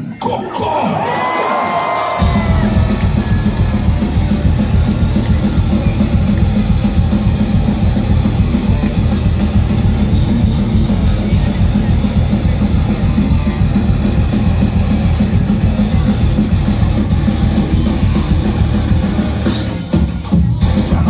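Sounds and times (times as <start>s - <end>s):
drums and bass: 0.0s - 21.0s
heavy metal band playing live: 0.2s - 21.0s.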